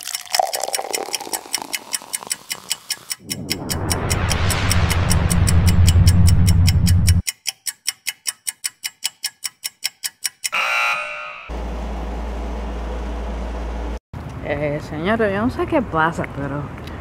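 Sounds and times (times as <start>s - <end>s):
clock-like ticking: 0.0s - 10.6s
low drone: 3.2s - 7.2s.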